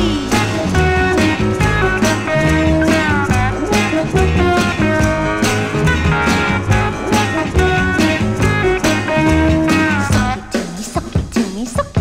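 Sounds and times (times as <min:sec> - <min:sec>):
pop band with guitar: 0:00.0 - 0:12.0.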